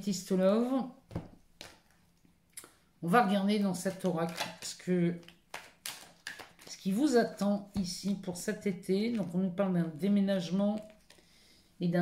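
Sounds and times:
cards rustling and tapping: 1.1s - 2.2s, 3.8s - 6.8s.

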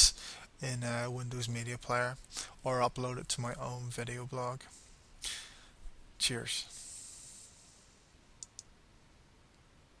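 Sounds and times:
computer mouse clicks: 8.4s - 8.7s.

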